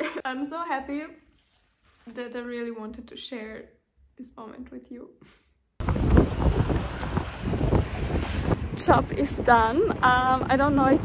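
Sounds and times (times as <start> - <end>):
wind buffeting microphone: 5.8 - 11.0.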